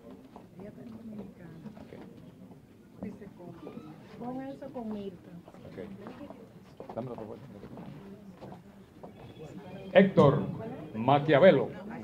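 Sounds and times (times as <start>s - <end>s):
low voices murmuring: 0.9s - 12.0s.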